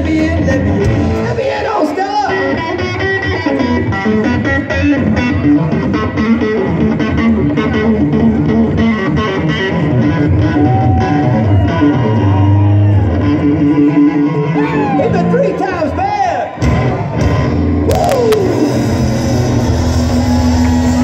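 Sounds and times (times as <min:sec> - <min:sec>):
blues-rock band playing: 0:00.0 - 0:21.0
electric guitar: 0:00.0 - 0:21.0.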